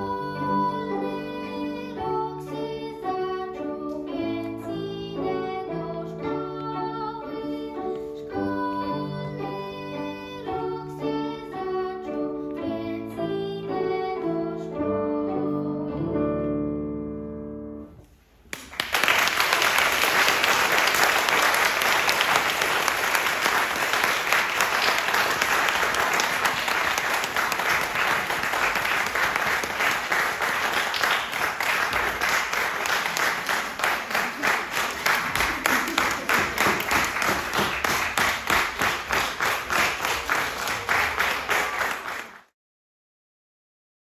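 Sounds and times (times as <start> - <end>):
audience applause: 18.5 - 42.5
rhythmic clapping in unison: 18.5 - 42.5.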